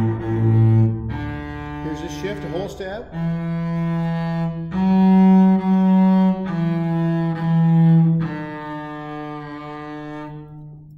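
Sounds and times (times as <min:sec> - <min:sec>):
bowed double bass: 0:00.0 - 0:10.9.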